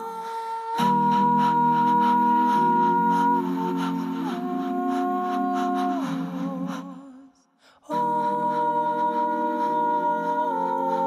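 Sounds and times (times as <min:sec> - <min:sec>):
layered a cappella voices: 0:00.0 - 0:11.0.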